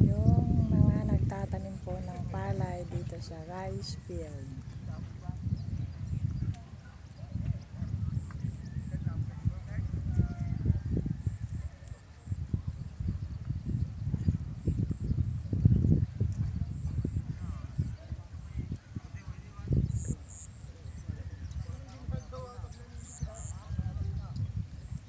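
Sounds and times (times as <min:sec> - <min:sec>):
wind buffeting microphone: 0:00.0 - 0:25.0
faint distant voices: 0:00.1 - 0:13.3, 0:15.8 - 0:25.0.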